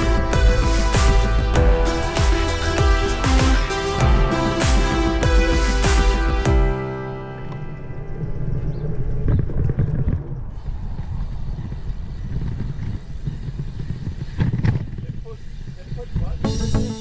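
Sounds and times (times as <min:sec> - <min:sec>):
low rumble of wind and rolling: 0:07.4 - 0:16.5.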